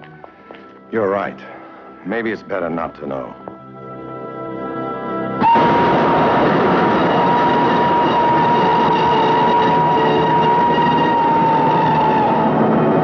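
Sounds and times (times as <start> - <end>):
steam train whistle: 5.4 - 13.0.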